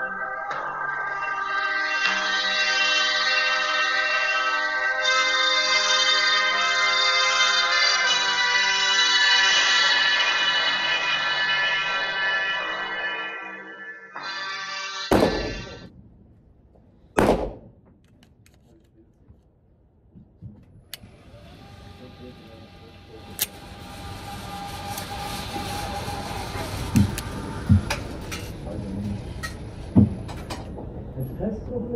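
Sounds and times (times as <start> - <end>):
pistol shots with echo: 15.1 - 15.9, 17.2 - 17.8.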